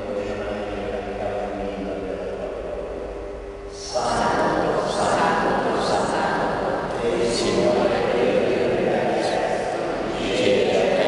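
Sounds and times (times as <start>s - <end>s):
man chanting with reverberation: 0.0s - 11.0s.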